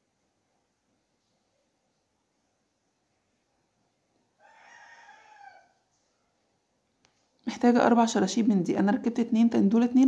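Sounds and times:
faint animal call: 4.4 - 6.4.

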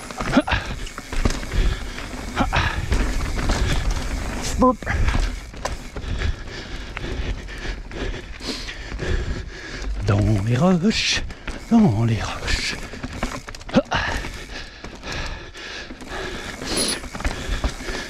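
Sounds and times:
rider grunting: 0.0 - 8.8, 11.4 - 18.0
bike rattles and knocks: 0.0 - 18.0
bike tyres rolling over dirt: 0.0 - 18.0.

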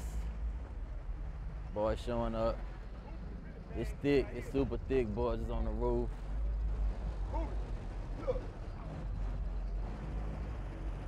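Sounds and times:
car sound system bass rumble: 0.0 - 11.0.

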